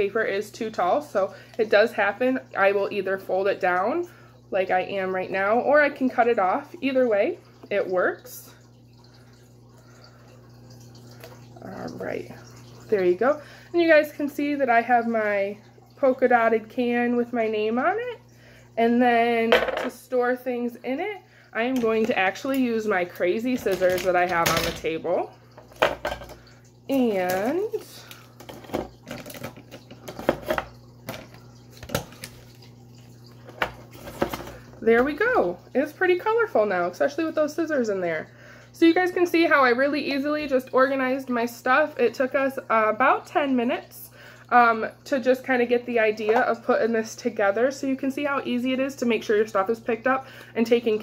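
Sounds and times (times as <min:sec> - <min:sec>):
low electrical hum: 0:00.0 - 0:51.0.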